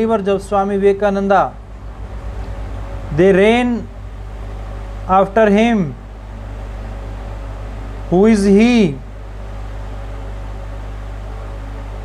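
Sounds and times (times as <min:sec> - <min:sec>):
low room tone hum: 0:00.0 - 0:12.0.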